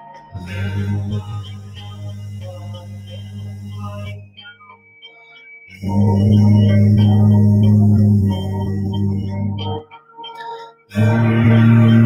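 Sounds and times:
man toning a low steady vowel: 0:00.4 - 0:04.4, 0:05.7 - 0:09.8, 0:10.9 - 0:12.0.

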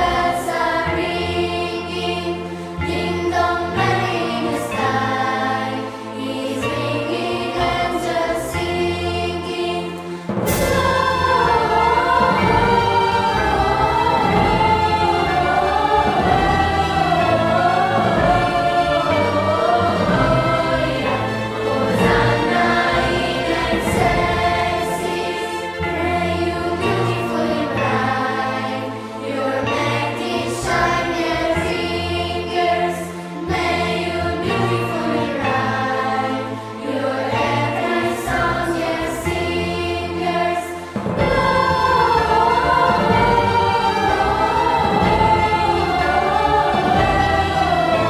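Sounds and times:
choir singing christmas song: 0:00.0 - 0:48.0
instrumental accompaniment: 0:00.0 - 0:48.0.

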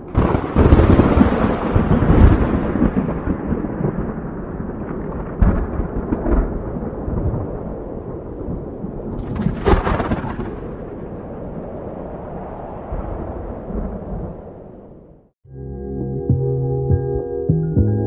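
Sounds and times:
rolling thunder: 0:00.0 - 0:15.3
sharp thunder crack: 0:00.0 - 0:15.3.

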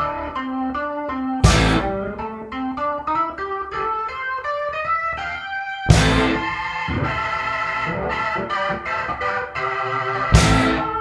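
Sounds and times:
plucked-string melody: 0:00.0 - 0:11.0.

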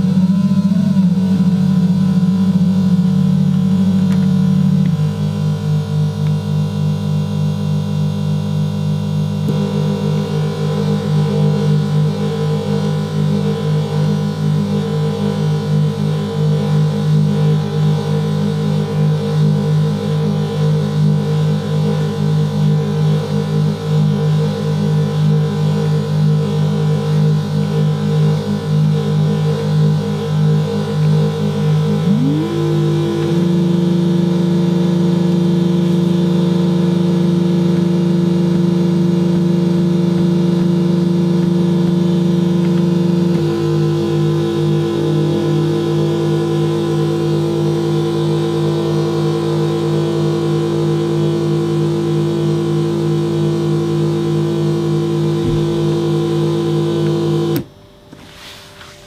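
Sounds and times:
noise synthesizer droning: 0:00.0 - 0:58.2.

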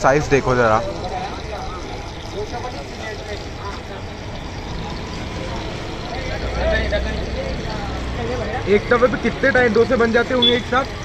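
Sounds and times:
passing traffic: 0:00.0 - 0:11.0.

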